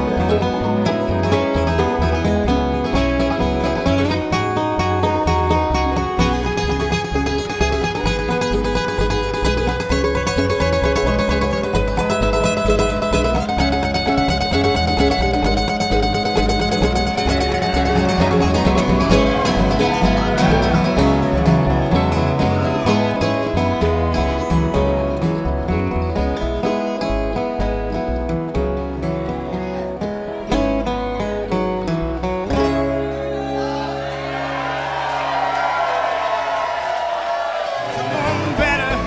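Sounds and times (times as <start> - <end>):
upright bass pulse: 0.0 - 29.7
bluegrass band playing: 0.0 - 39.0.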